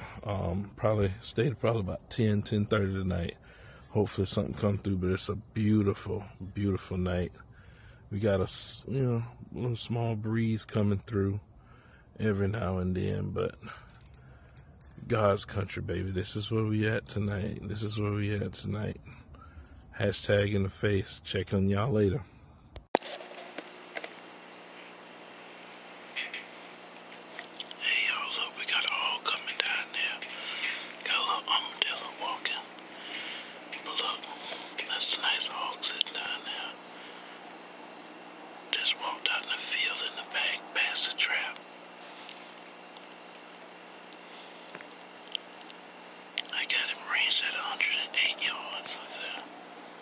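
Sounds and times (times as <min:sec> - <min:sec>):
night insects chirring: 0:00.0 - 0:50.0
person whispering: 0:27.6 - 0:36.9, 0:38.7 - 0:41.7, 0:46.4 - 0:49.6.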